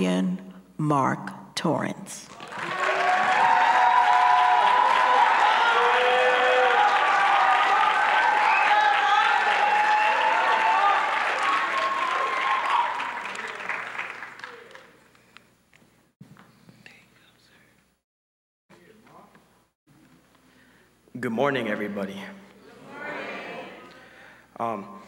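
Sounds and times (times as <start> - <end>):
audience applauding: 2.3 - 15.3.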